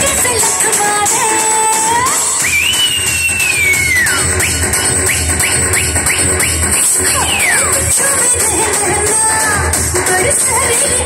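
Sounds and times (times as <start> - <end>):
electronic dance music: 0.0 - 11.0
heavy bass beat: 0.0 - 11.0.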